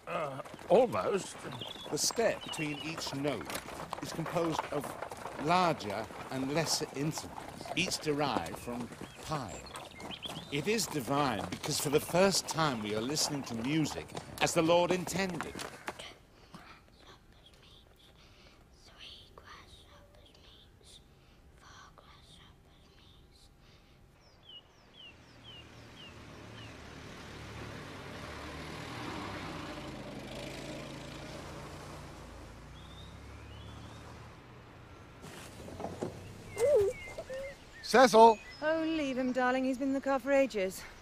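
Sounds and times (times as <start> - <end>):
old car engine driving past: 0.0 - 15.8, 24.9 - 37.8
bird chirping falling notes: 35.1 - 39.4.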